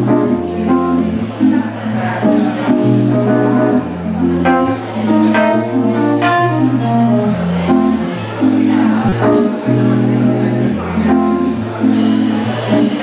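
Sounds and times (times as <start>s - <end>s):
keyboard chords: 0.0s - 13.0s
bass line: 8.9s - 10.0s.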